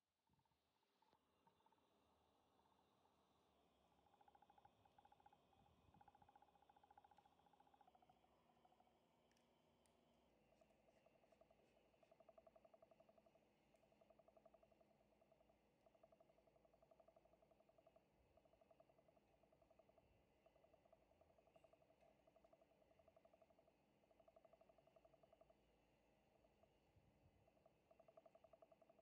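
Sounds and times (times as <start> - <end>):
faint pulsing chirping: 0.9 - 29.0.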